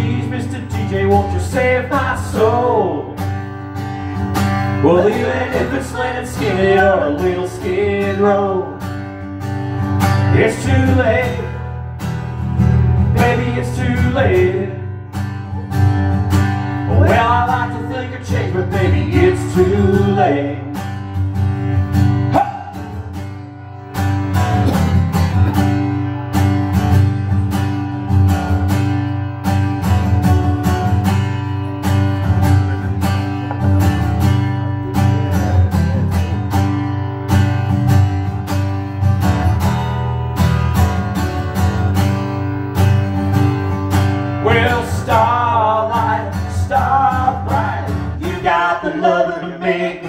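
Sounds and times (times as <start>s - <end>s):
acoustic guitar strumming: 0.0s - 50.0s.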